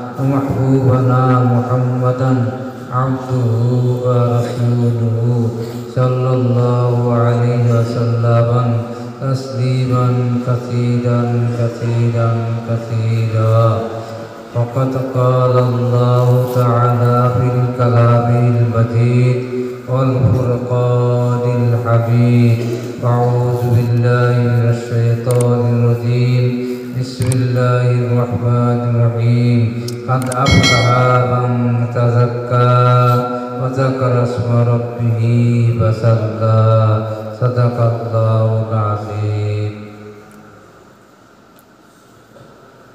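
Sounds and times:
man chanting melodic recitation: 0:00.0 - 0:40.8.

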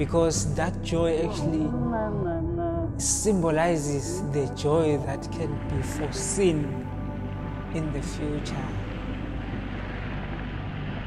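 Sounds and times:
low drone of sustained tones: 0:00.0 - 0:11.0
wash of noise: 0:03.7 - 0:11.0.

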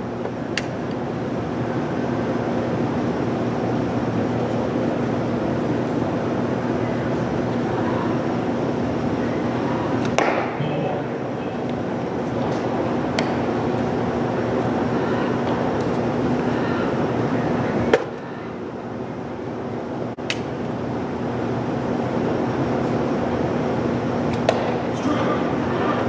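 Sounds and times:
ballpark background hum: 0:00.0 - 0:26.0.

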